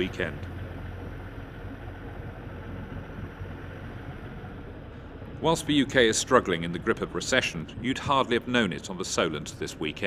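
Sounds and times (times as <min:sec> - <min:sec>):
low rumble: 0:00.0 - 0:09.9
choppy water around boat: 0:00.0 - 0:10.0.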